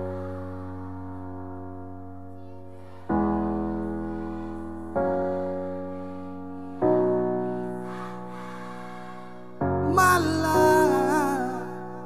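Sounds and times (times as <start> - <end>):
piano chords on keyboard: 0.0 - 12.0.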